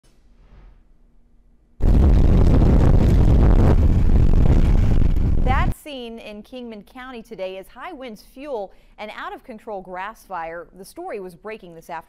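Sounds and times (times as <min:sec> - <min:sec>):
wind buffeting microphone: 0:01.8 - 0:05.7.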